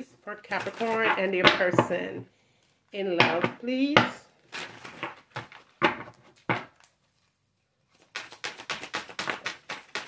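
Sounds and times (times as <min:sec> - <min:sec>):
cards being shuffled: 0:08.0 - 0:10.0.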